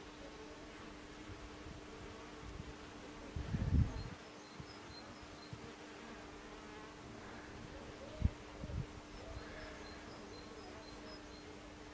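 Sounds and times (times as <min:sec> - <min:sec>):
bee buzzing past: 0:00.3 - 0:11.9.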